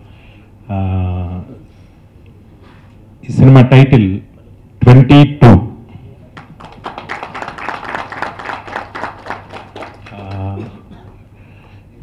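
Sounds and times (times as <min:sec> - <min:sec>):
audience clapping: 0:06.3 - 0:11.8.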